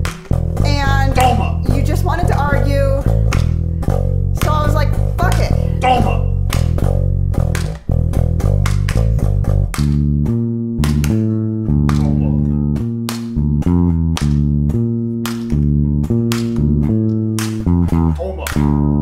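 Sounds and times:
electric bass guitar plucked line: 0.0 - 19.0.

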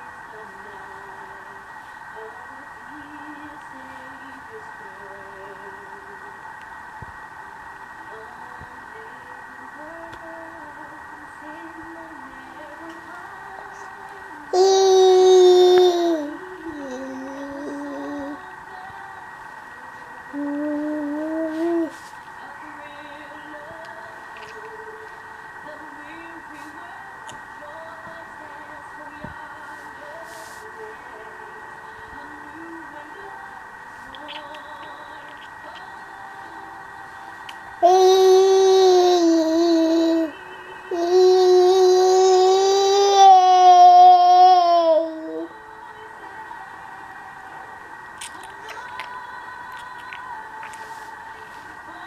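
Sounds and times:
steady background hum: 0.0 - 52.0
toddler singing held notes: 14.5 - 18.4, 20.3 - 22.1, 37.8 - 45.5.

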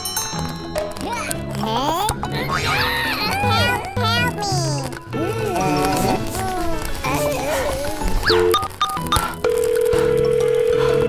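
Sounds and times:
steady phone tone: 9.5 - 11.0.

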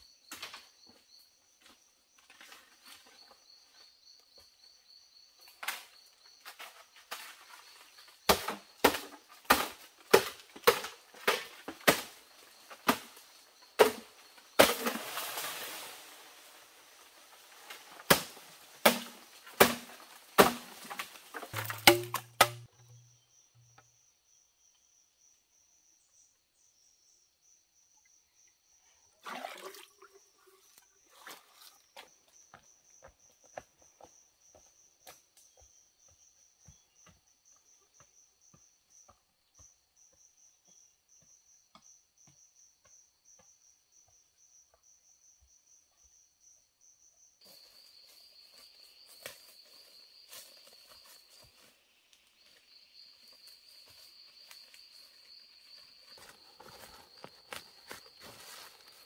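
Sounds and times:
chopping strikes on wood: 8.3 - 12.2, 13.8 - 15.0, 18.1 - 22.7
insects trilling: 22.6 - 59.0
loud insect call: 47.4 - 59.0.

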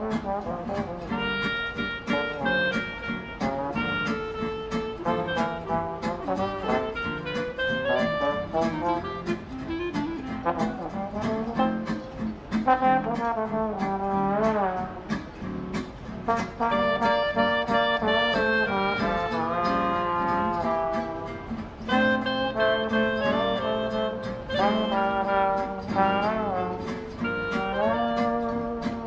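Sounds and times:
clarinet: 0.0 - 29.0
guitar strumming rhythm: 0.0 - 29.0
trombone: 0.0 - 29.0.

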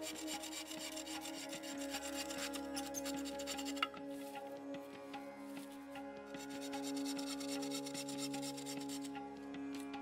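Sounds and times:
bow saw cutting wood: 0.0 - 4.3, 5.6 - 9.9
music with held drone: 0.0 - 10.0.

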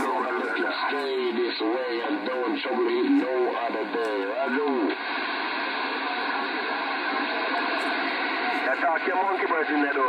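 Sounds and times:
radio static hiss: 0.0 - 10.0.

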